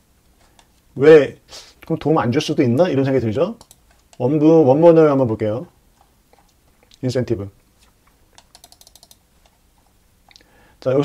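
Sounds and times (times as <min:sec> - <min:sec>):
computer keyboard clicks: 0:03.6 - 0:04.2, 0:08.4 - 0:09.6.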